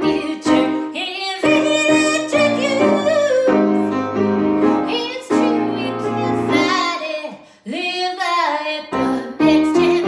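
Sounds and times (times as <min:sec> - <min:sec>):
grand piano chords: 0:00.0 - 0:07.2, 0:08.9 - 0:10.0
woman singing: 0:00.0 - 0:10.0.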